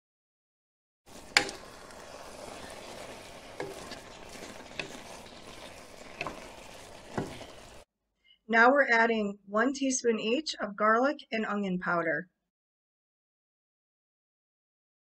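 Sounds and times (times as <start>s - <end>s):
meat sizzling in a frying pan: 1.1s - 7.8s
spoon knocking against pan: 6.0s - 7.6s.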